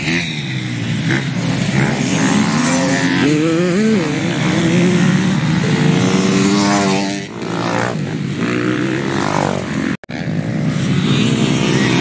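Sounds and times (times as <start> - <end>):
motocross bike engine revving: 0.0 - 12.0.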